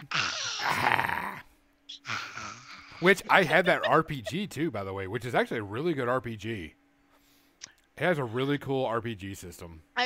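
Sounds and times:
woman laughing: 2.0 - 4.6.

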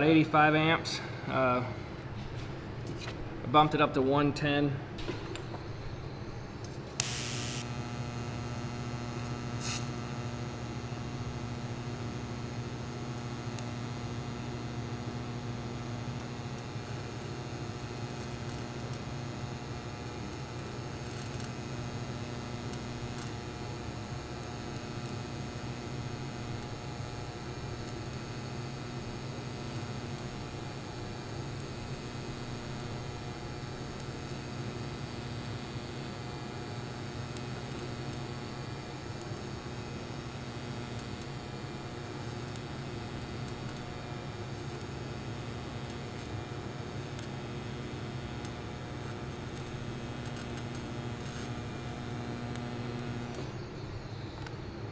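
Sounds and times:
welding arc humming and hissing: 0.0 - 54.9
welding arc start crackle: 6.9 - 54.7.

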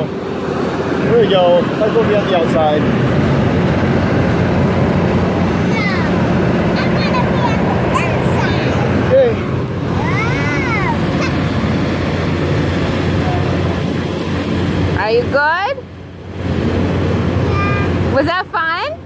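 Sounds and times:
rushing noise: 0.0 - 18.2
fairground ride machine hum: 0.0 - 19.0.

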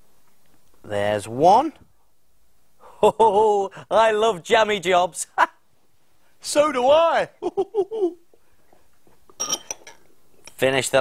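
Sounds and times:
knife clinking against crockery: 9.4 - 10.6.

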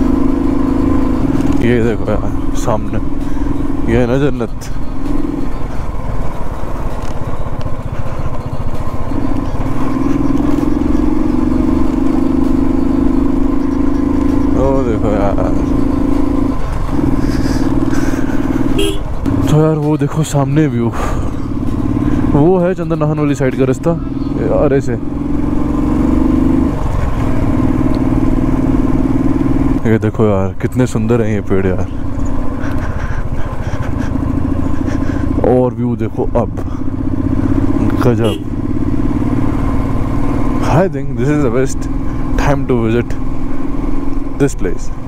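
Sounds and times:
motorcycle engine running: 0.0 - 45.0.

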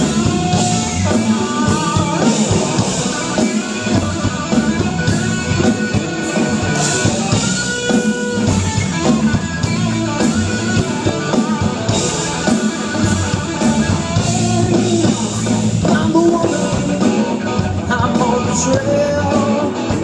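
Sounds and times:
drum kit: 0.0 - 20.0
electric guitar: 0.0 - 20.0.

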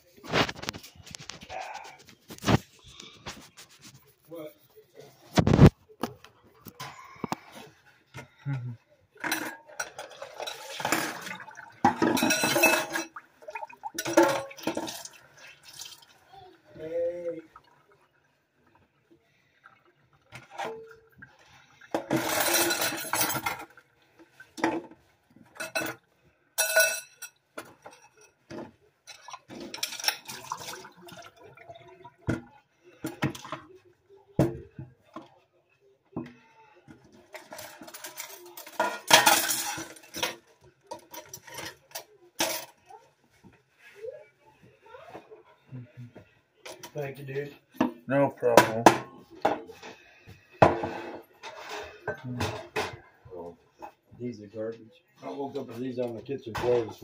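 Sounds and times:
plates and cutlery clinking: 5.3 - 8.4, 9.2 - 16.0, 21.8 - 30.9, 36.2 - 43.0, 47.7 - 53.2, 56.5 - 57.0
running water: 9.3 - 25.7, 29.0 - 33.7.

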